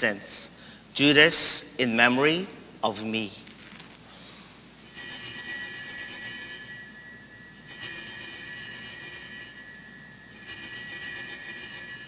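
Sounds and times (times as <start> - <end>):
altar bells ringing: 4.8 - 12.0.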